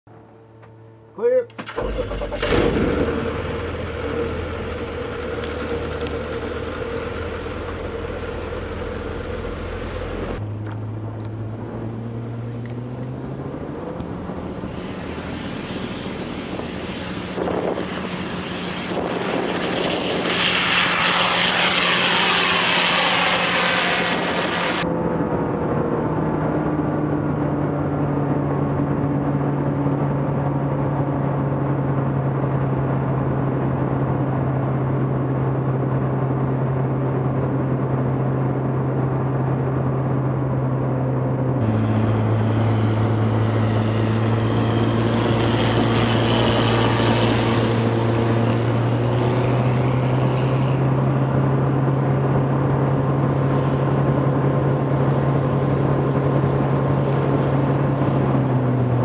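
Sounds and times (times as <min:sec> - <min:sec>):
light plane engine and propeller: 0:00.1 - 0:59.0.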